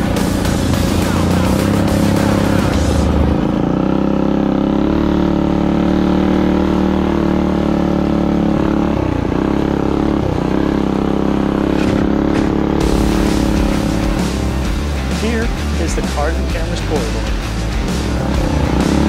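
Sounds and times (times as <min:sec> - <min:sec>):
minibike engine running: 0:00.0 - 0:19.0.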